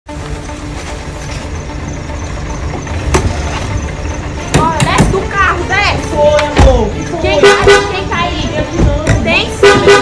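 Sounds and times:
vehicle engine idling: 0.1s - 10.0s.

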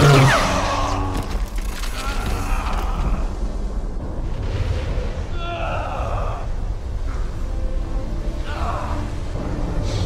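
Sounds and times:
orchestral score: 1.8s - 10.0s
steady rumbling noise: 2.4s - 10.0s.

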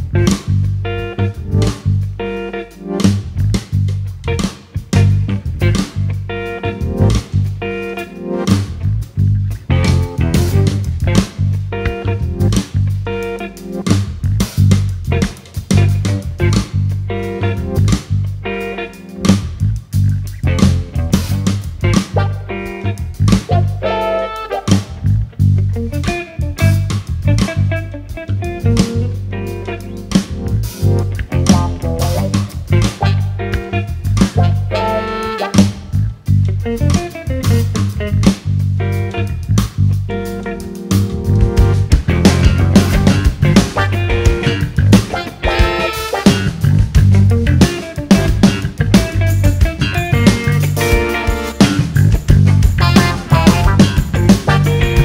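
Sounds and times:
bass guitar: 0.0s - 55.0s
drum kit: 0.0s - 55.0s
electric guitar: 0.0s - 55.0s.

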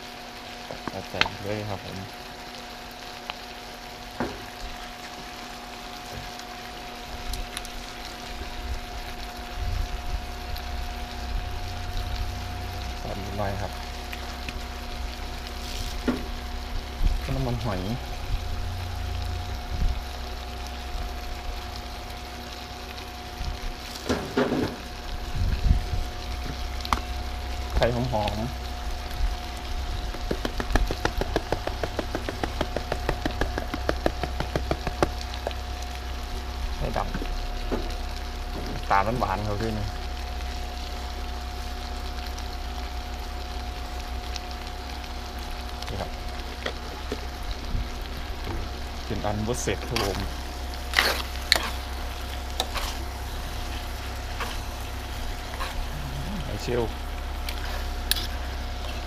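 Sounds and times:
food sizzling in a pan: 0.0s - 59.0s
seasoning shaken over pan: 30.1s - 35.1s.

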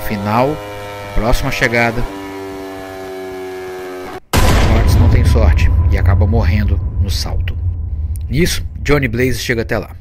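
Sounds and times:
steady suspense drone: 4.4s - 10.0s.

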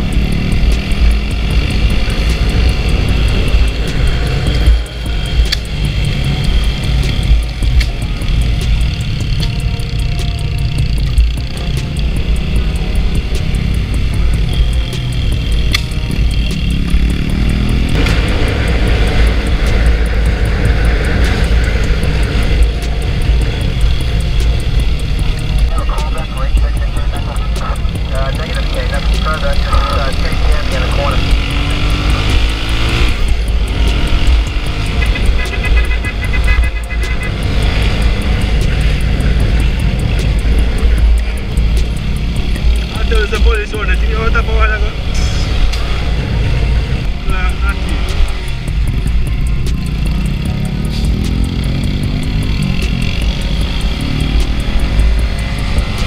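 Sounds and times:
motorcycle running: 0.0s - 56.0s
muffled voices: 25.7s - 31.4s, 42.9s - 45.5s.

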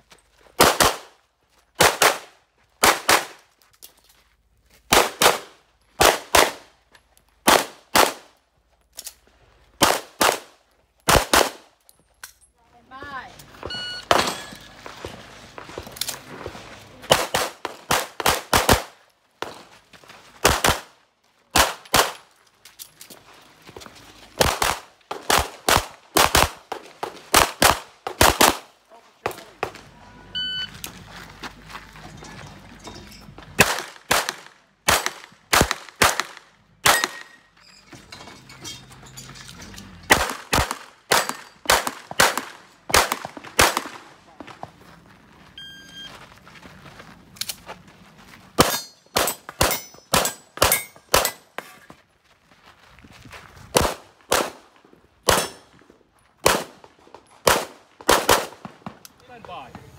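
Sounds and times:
pistol shots: 0.6s - 1.1s, 7.4s - 8.3s, 11.1s - 11.6s, 17.1s - 19.0s, 20.4s - 20.9s, 21.5s - 22.2s, 24.4s - 29.7s, 33.6s - 37.4s, 40.1s - 44.0s, 48.6s - 51.4s, 53.8s - 54.6s, 55.2s - 55.6s, 56.4s - 56.8s, 57.4s - 59.0s
steel targets ringing: 13.7s - 14.8s.

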